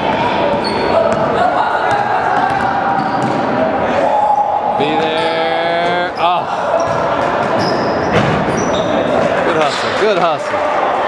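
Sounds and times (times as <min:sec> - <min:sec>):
voices of players and spectators: 0:00.0 - 0:11.0
ball bouncing: 0:01.9 - 0:03.5
sneakers squeaking on hardwood: 0:01.9 - 0:03.5, 0:05.9 - 0:10.0.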